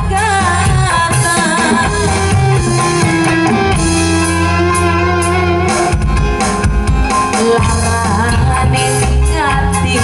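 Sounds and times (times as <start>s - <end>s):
amplified band music over loudspeakers: 0.0s - 10.0s.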